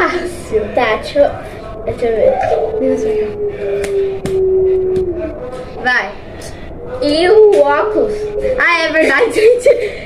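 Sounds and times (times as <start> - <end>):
girl humming: 1.9 - 5.3.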